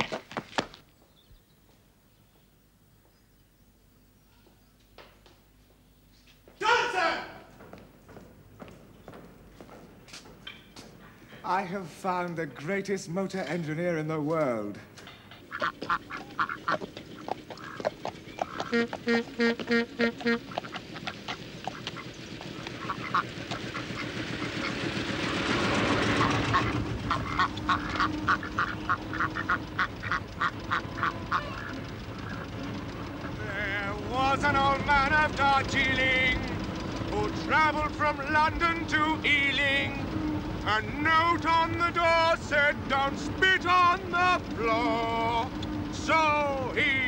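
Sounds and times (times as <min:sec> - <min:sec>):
old car engine running: 0:06.7 - 0:47.0
man's voice: 0:11.4 - 0:14.9, 0:33.4 - 0:36.5, 0:37.1 - 0:40.0, 0:40.7 - 0:47.0
ducks quacking: 0:15.4 - 0:24.9, 0:26.0 - 0:34.8.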